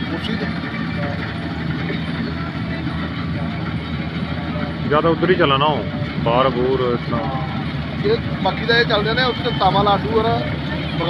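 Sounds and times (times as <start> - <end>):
diesel engine droning: 0.0 - 11.0.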